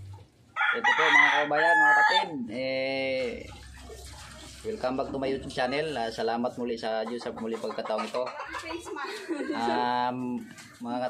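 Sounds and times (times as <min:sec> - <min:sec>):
rooster crowing: 0:00.6 - 0:02.3.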